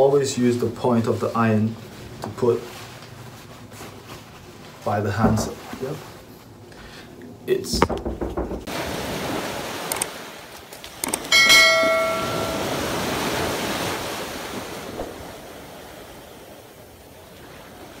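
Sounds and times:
surf washing onto beach: 8.7s - 10.6s, 11.6s - 18.0s
ringing bell ding: 11.3s - 13.0s.

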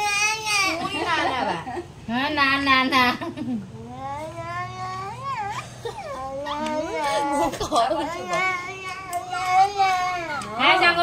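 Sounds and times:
toddler whining: 0.0s - 1.0s, 3.8s - 10.9s.

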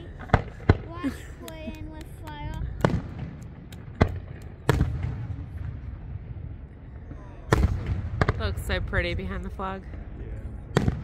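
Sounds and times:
fireworks shells booming: 0.0s - 1.3s, 2.0s - 9.4s, 10.7s - 11.0s
low rumble: 1.8s - 11.0s.

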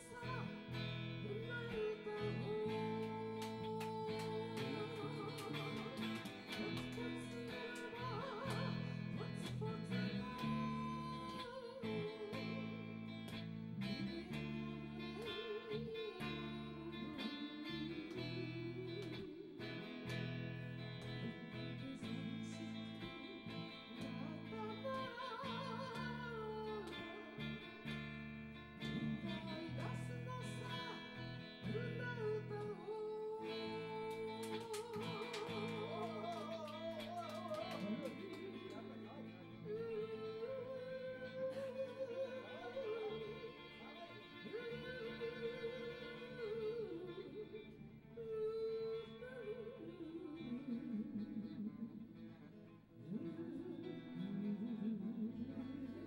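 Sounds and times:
accompanying guitar: 0.0s - 56.0s
guitar melody with vibrato: 0.0s - 56.0s.

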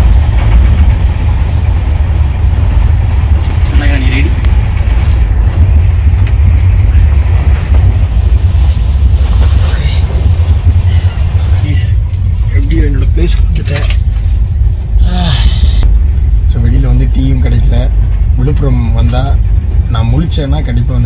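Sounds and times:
train rumbling: 0.0s - 21.0s
man talking: 11.6s - 14.0s, 16.5s - 21.0s.

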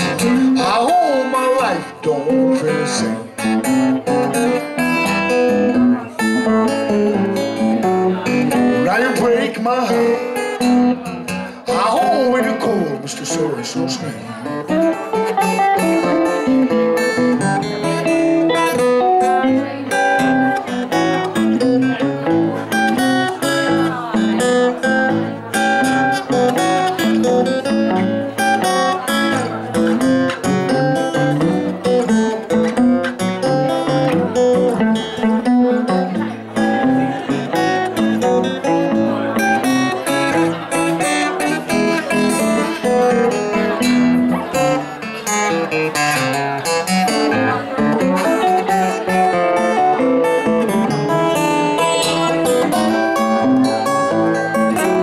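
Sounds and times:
acoustic guitar: 0.0s - 55.0s
electric guitar: 0.0s - 55.0s.

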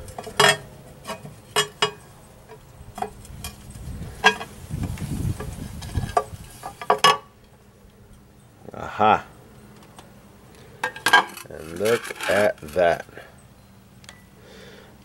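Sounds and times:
dull rumbling of handling: 0.0s - 15.0s.

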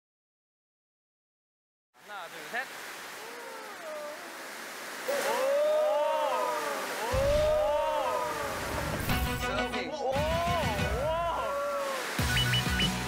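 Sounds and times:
rushing water: 2.0s - 13.0s
voices calling out: 3.0s - 13.0s.

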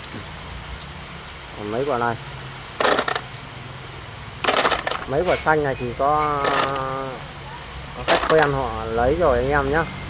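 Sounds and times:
capacitors clattering on concrete: 2.7s - 3.5s, 4.4s - 7.3s, 8.0s - 8.8s.

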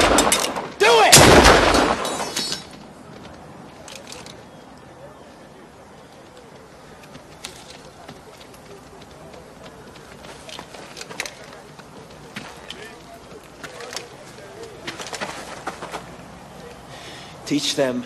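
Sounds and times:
background hiss: 0.0s - 18.0s
crowd murmuring: 2.6s - 17.7s.

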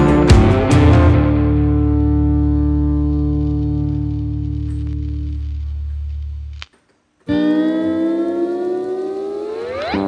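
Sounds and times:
electric guitar notes: 0.0s - 10.0s.

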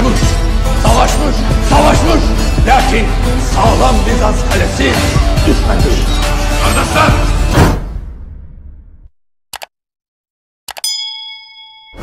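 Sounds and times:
notification bell ding: 10.7s - 12.0s.

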